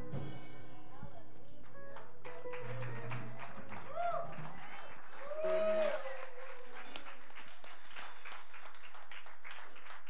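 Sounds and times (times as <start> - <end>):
scattered applause: 2.0 - 10.0.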